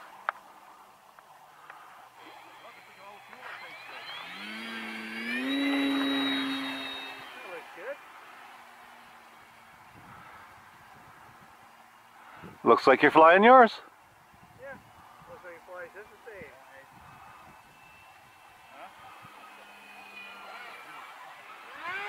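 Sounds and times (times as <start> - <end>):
model plane electric motor whine: 2.1 - 10.1, 14.7 - 22.0.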